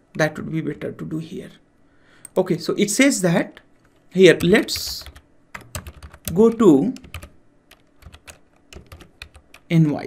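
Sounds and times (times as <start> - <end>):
person speaking: 0.0 - 1.7, 2.3 - 7.4, 8.0 - 10.0.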